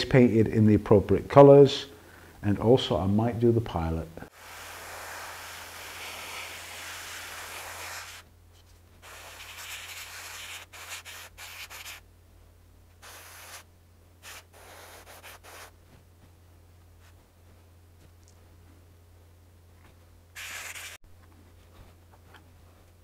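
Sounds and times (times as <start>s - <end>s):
airbrush spraying paint: 4.3s - 8.3s, 9.0s - 12.0s, 13.0s - 15.8s, 20.4s - 21.0s.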